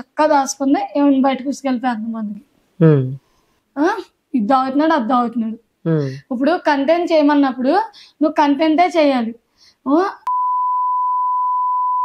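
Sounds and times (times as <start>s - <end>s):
censor bleep: 10.3s - 12.0s.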